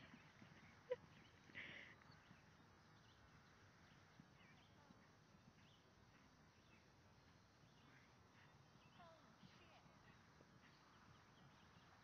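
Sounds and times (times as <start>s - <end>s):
distant hooves cantering on grass: 0.0s - 12.0s
faint bird chirps: 0.0s - 12.0s.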